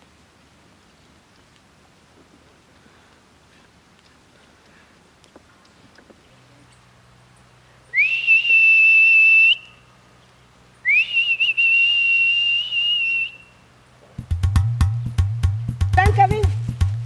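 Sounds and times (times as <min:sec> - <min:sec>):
high sliding whistle notes: 0:08.0 - 0:09.8, 0:10.9 - 0:13.5
music with drums and percussion: 0:14.2 - 0:17.0.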